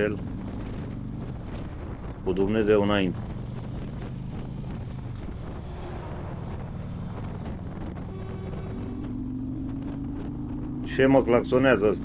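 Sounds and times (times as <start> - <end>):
motorcycle engine running: 0.0 - 12.0
wind rushing over microphone: 0.0 - 12.0
lorry horn: 7.8 - 9.2.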